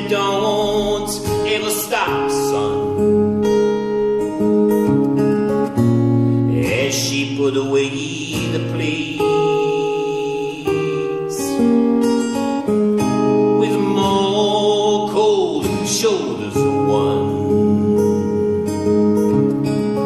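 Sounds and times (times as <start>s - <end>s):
man singing: 0.0s - 3.2s, 6.5s - 11.7s, 13.5s - 18.3s
acoustic guitar strumming: 0.0s - 20.0s.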